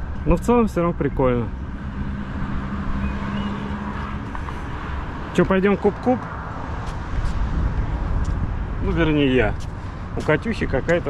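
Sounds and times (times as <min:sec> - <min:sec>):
wind buffeting microphone: 0:06.3 - 0:11.0.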